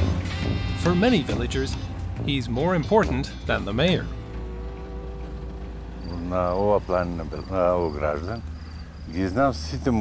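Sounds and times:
cricket chirping: 2.8 - 10.0.

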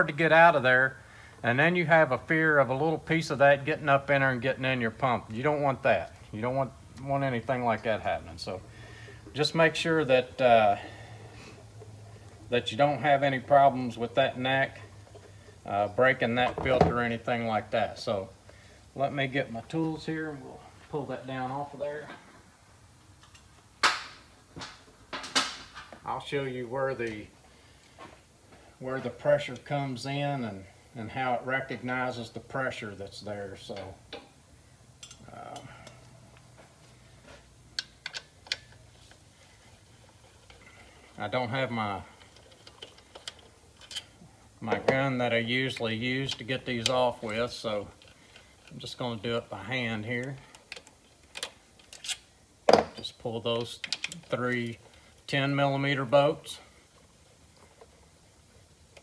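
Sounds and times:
low steady hum: 0.0 - 59.0.

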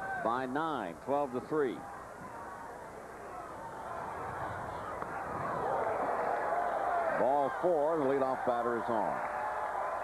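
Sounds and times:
crowd murmur: 1.4 - 10.0.

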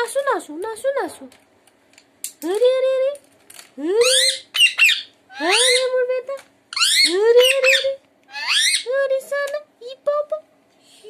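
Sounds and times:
parakeet calling: 4.0 - 6.1, 6.7 - 8.9.

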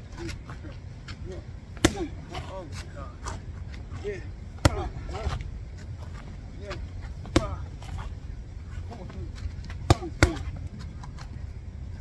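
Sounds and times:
boxing gloves hitting mitts: 1.8 - 2.5, 4.6 - 5.4, 9.7 - 10.6.

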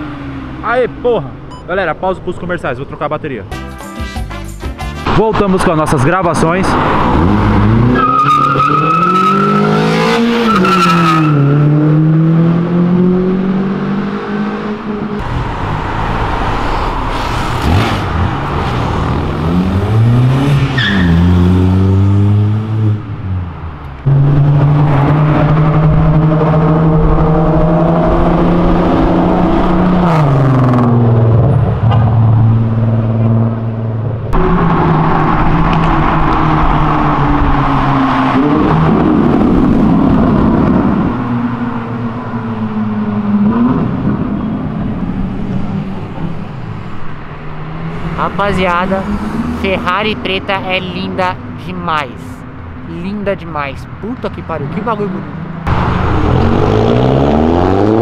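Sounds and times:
car engines accelerating hard: 5.0 - 58.0.

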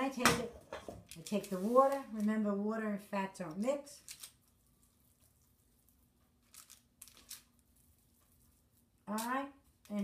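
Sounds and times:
wet hands rolling meatballs: 3.4 - 10.0.

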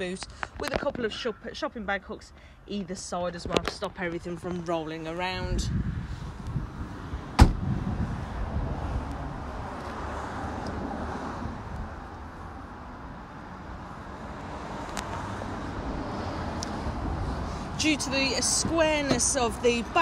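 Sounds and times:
car tailgate slamming: 7.4 - 7.7.

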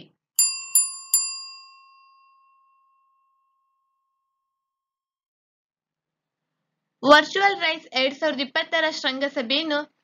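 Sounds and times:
metallic bell ringing: 0.4 - 3.8.

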